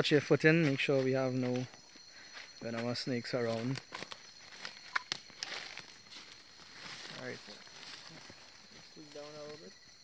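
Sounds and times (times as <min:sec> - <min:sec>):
high insect drone: 0:00.0 - 0:10.0
leaves and twigs rustling: 0:00.0 - 0:10.0
twigs snapping: 0:03.8 - 0:06.0.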